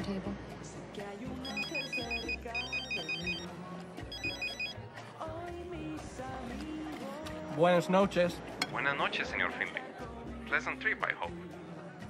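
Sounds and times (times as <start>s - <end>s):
background music: 0.0s - 12.0s
mobile phone ringtone trilling: 1.4s - 3.5s, 4.1s - 4.8s.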